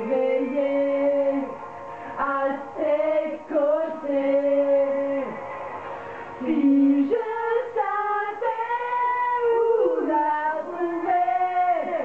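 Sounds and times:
backing track music: 0:00.0 - 0:09.3
woman singing karaoke: 0:00.0 - 0:12.0.

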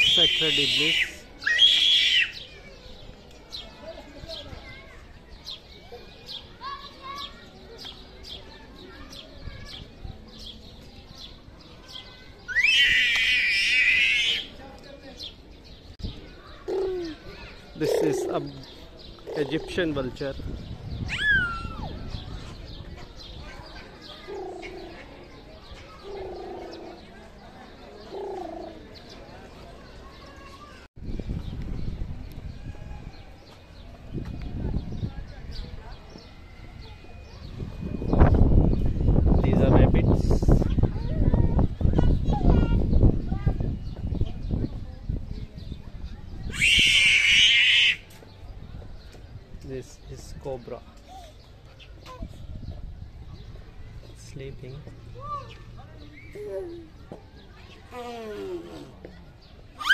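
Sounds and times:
low even bird coos: 0:16.6 - 0:20.0, 0:24.1 - 0:25.2, 0:25.9 - 0:29.1.

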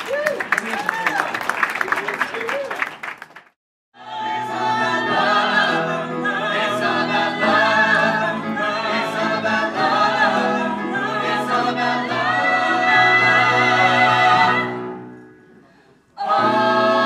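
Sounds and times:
choir singing in harmony: 0:04.0 - 0:15.2, 0:16.2 - 0:17.0.

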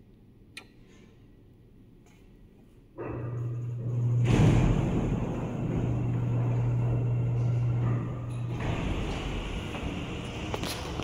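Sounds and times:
elevator doors rumbling: 0:03.0 - 0:11.0
door motor humming: 0:03.2 - 0:11.0.

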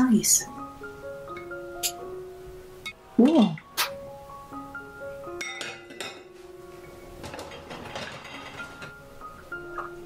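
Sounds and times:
soft background music: 0:00.0 - 0:10.0
glass clinking against jar: 0:05.4 - 0:06.2.

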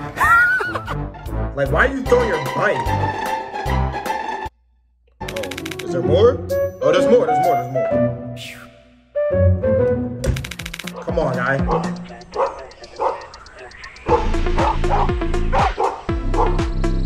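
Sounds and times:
background music: 0:00.0 - 0:17.0
bass-heavy beat: 0:10.3 - 0:17.0
dog barking: 0:11.7 - 0:13.3, 0:14.1 - 0:16.6.

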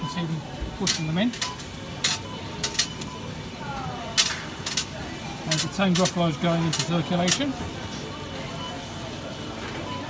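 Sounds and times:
coins clinking into machine: 0:00.8 - 0:03.3, 0:04.1 - 0:07.6.

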